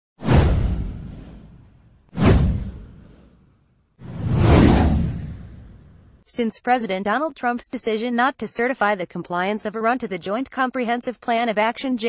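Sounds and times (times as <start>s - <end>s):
whoosh sound effects: 0.2s - 6.2s.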